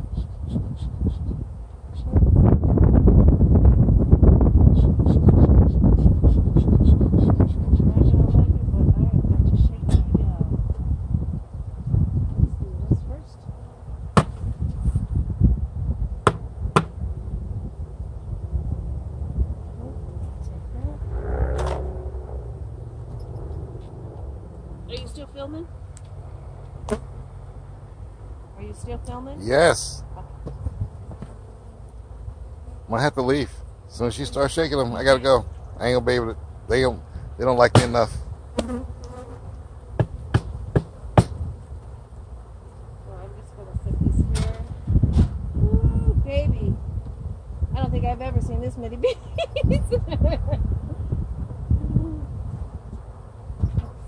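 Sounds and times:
wind rumbling on microphone: 0.0 - 26.9, 27.6 - 31.6, 39.9 - 54.0.

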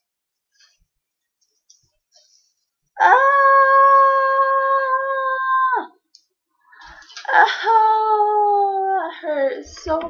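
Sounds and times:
child crying out in pain: 3.0 - 6.0.

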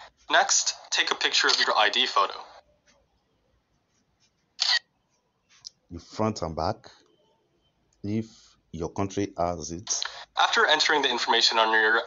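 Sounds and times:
phone camera shutter: 4.6 - 4.8.

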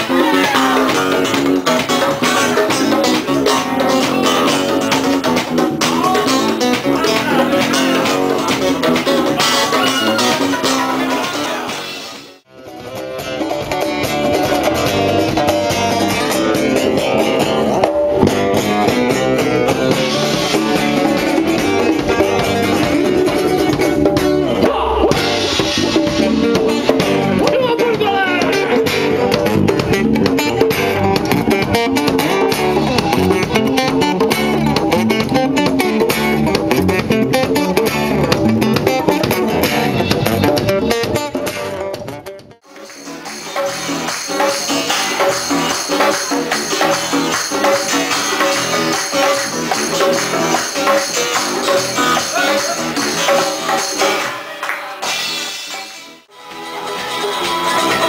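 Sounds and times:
hand drums and drum kit: 0.0 - 11.7, 13.2 - 54.3
electric bass: 0.0 - 54.3
guitar lines: 0.0 - 58.0.

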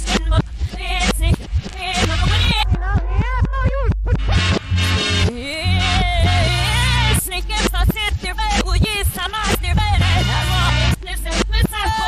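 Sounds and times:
reversed female vocal: 0.0 - 4.3, 5.3 - 12.0
reversed drums and bass: 0.0 - 5.3.

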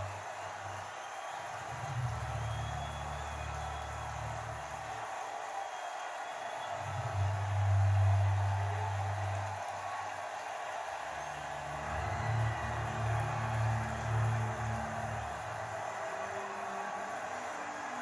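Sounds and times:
crowd cheering on television: 0.0 - 18.0.

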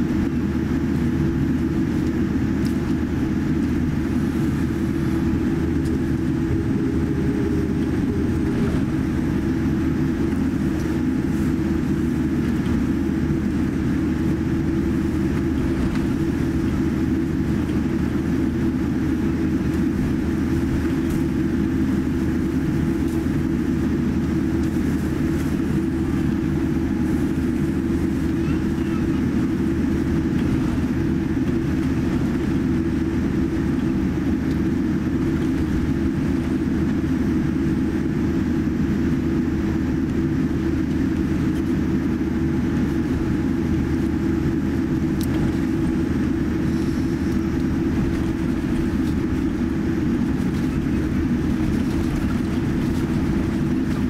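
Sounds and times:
airliner cabin rumble and hum: 0.0 - 54.0.

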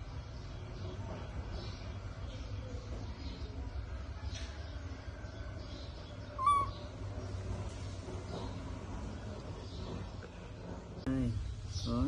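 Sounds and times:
baby monkey call: 6.4 - 6.9.

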